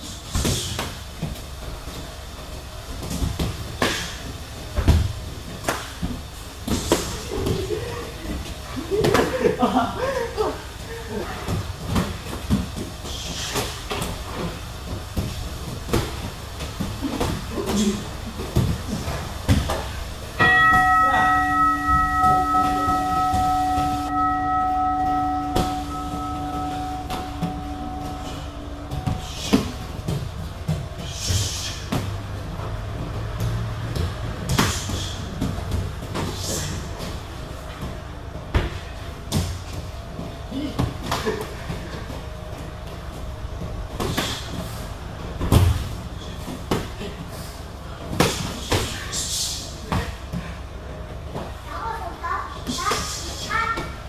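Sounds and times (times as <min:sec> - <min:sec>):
knocks and shuffles on mat: 0:00.2 - 0:09.3, 0:10.7 - 0:54.0
bell ringing out: 0:20.4 - 0:29.9.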